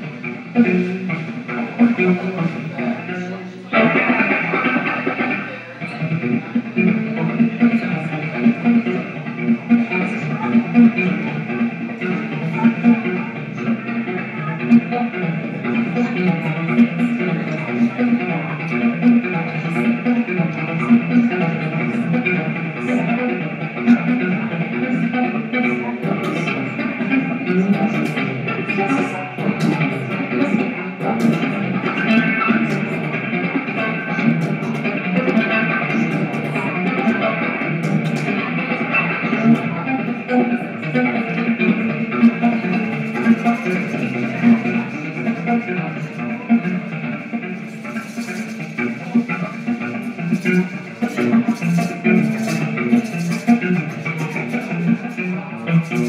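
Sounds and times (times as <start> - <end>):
free jazz ensemble playing: 3.7 - 56.0.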